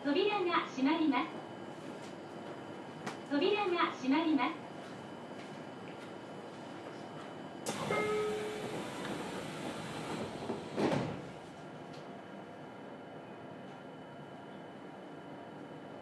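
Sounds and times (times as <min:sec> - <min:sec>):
train doors sliding shut: 0:07.6 - 0:11.4
short door warning tone: 0:07.7 - 0:09.7
doors shutting with a thud: 0:07.7 - 0:11.3.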